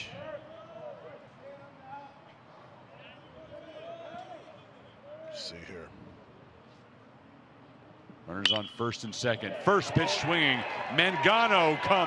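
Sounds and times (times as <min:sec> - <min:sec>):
faint scattered crowd voices: 0:00.0 - 0:12.0.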